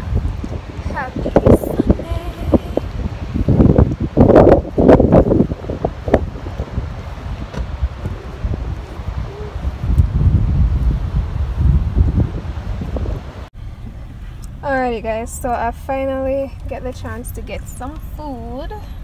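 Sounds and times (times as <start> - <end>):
wind buffeting microphone: 0.0 - 15.5.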